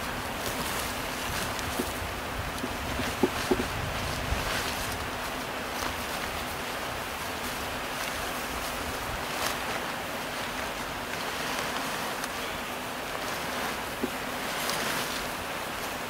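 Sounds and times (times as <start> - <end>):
nylon rustling: 0.0 - 16.0
steady rushing outdoor noise: 0.0 - 16.0.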